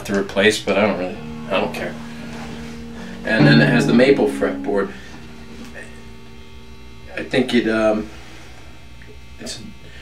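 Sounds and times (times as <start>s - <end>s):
guitar amp electrical hum: 0.0s - 10.0s.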